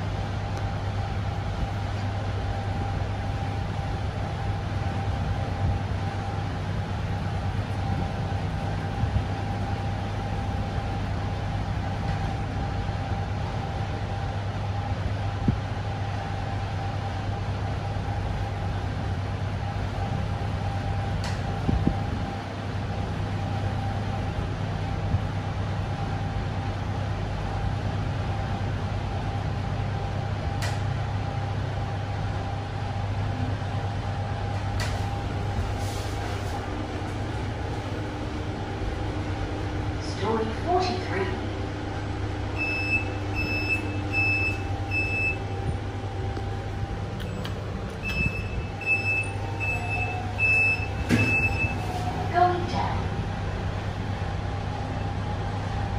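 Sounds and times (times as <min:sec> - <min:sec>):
constant low hum: 0:00.0 - 0:55.9
lift car rushing noise: 0:29.2 - 0:55.9.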